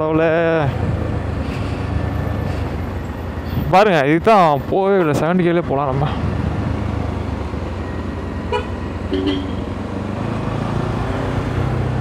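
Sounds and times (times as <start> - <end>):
motorcycle riding noise: 4.0 - 12.0
horn toot: 8.5 - 9.7.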